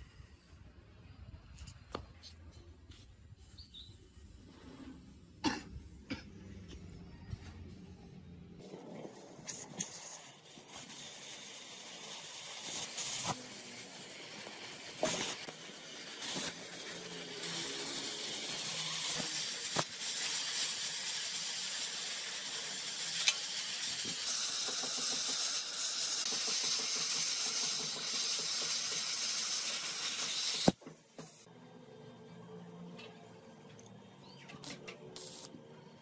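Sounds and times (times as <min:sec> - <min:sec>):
cutting torch hissing: 0:09.1 - 0:31.5, 0:34.7 - 0:35.5.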